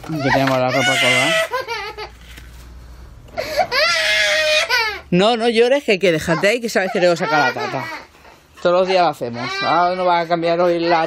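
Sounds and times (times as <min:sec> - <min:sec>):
baby crying: 0:00.0 - 0:02.1, 0:03.4 - 0:05.1, 0:06.1 - 0:11.0.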